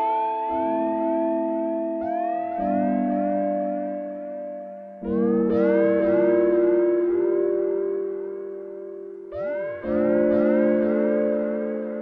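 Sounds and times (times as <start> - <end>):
synthesizer chord with pitch glides: 0.0 - 12.0.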